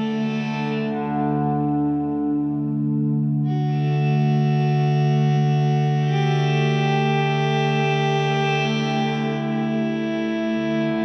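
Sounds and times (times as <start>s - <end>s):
distorted electric guitar chords: 0.0s - 11.0s.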